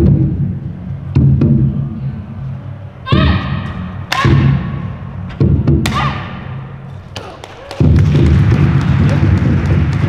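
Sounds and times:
woman shouting: 3.0 - 4.5, 5.9 - 6.4.

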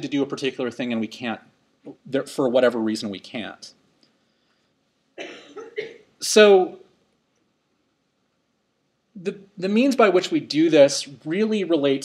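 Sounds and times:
person coughing: 5.2 - 6.1.

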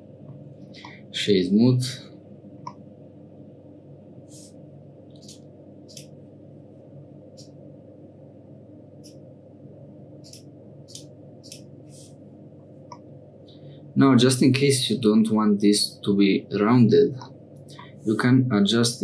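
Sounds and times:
low room hum: 0.0 - 19.0
computer mouse clicks: 5.1 - 6.1, 10.2 - 11.7.

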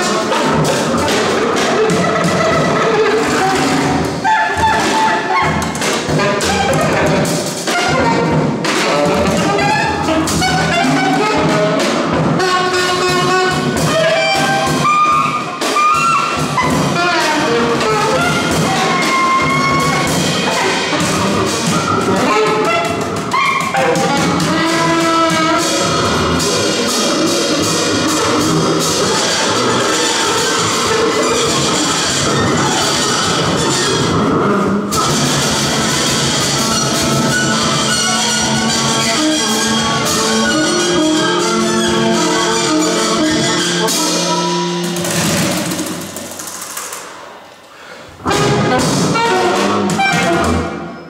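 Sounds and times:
double bass: 0.0 - 45.8, 48.2 - 51.0
saxophone: 0.0 - 46.2, 48.1 - 51.0
drum kit: 0.0 - 51.0.

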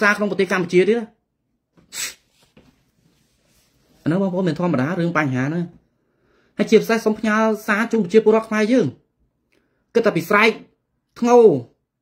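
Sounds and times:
short sharp breath: 1.8 - 2.4, 6.0 - 6.6.

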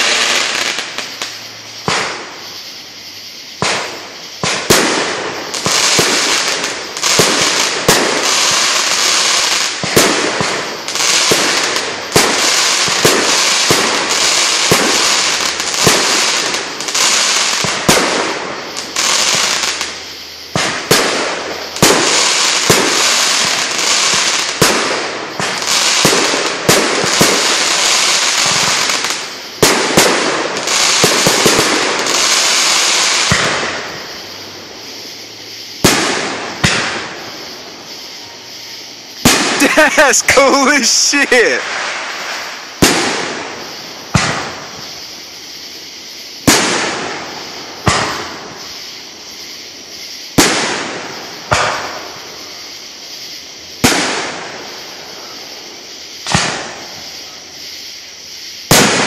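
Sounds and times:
fireworks crackling and banging: 0.0 - 57.8, 58.4 - 59.0.

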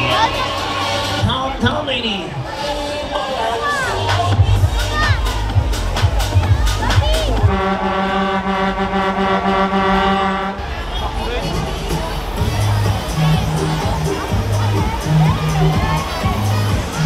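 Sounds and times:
crowd chatter: 0.0 - 17.0
funfair music with heavy bass beat: 0.0 - 17.0.

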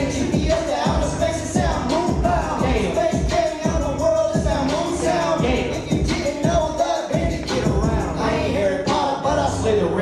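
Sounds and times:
hip hop beat with deep bass: 0.0 - 10.0
person singing: 0.0 - 10.0.

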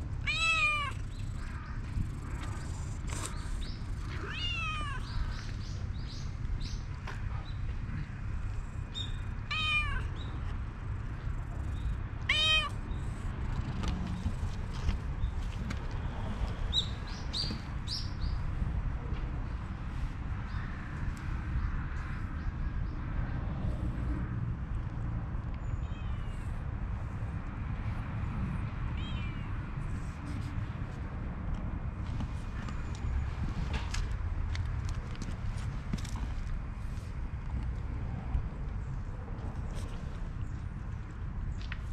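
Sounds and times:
cat meowing: 0.2 - 1.0, 4.2 - 5.1, 9.5 - 10.1, 12.3 - 12.8, 29.0 - 29.5.

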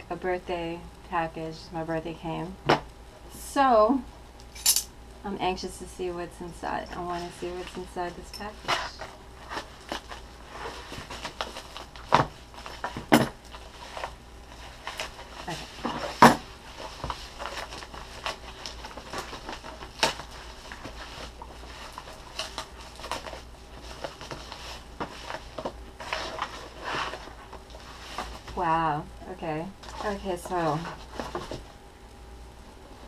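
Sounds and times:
packaging rustling and crinkling: 7.0 - 28.7, 29.8 - 31.8.

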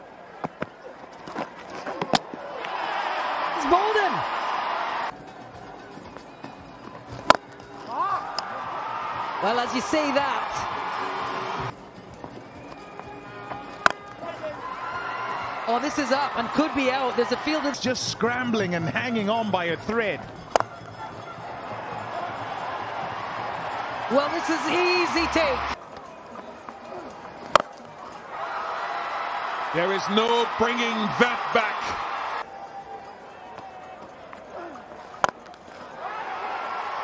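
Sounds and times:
loud stadium noise: 0.0 - 37.0
faint music: 5.1 - 37.0.

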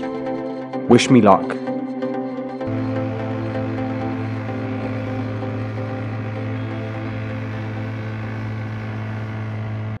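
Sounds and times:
outboard motor drone: 2.1 - 10.0.

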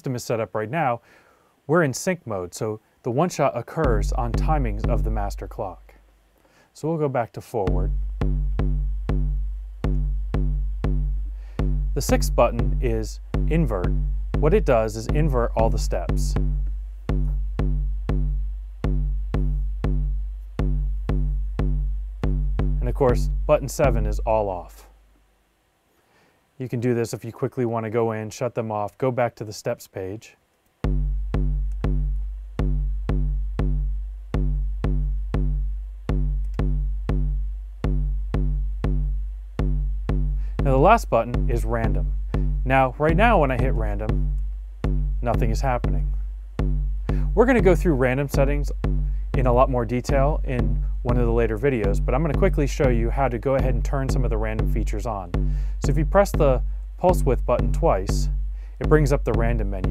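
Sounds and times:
kick drum hits: 3.9 - 5.5, 7.7 - 24.4, 30.8 - 59.9.

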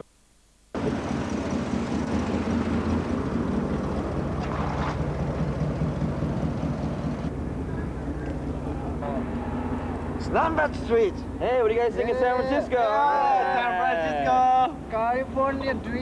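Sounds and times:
car engine hum: 0.7 - 16.0
road noise: 0.7 - 16.0.

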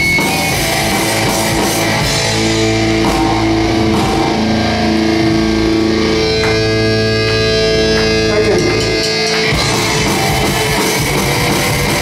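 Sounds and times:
bass guitar: 0.0 - 12.0
distorted electric guitars: 0.0 - 12.0.

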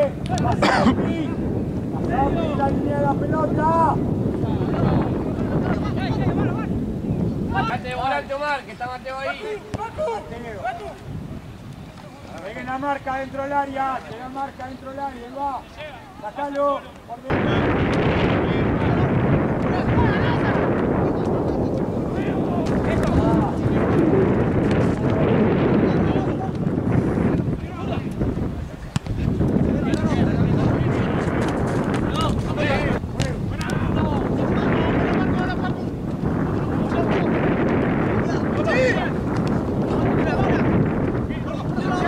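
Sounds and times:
wind buffeting microphone: 0.0 - 42.0
players' voices calling: 7.5 - 42.0.

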